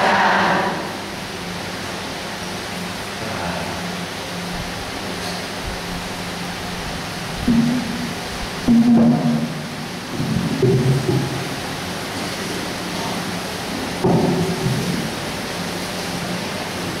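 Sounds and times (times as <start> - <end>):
steady hiss: 0.0 - 17.0.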